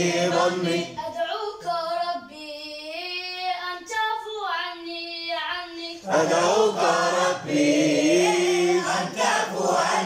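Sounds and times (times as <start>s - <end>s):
boy singing unaccompanied: 0.5s - 6.1s.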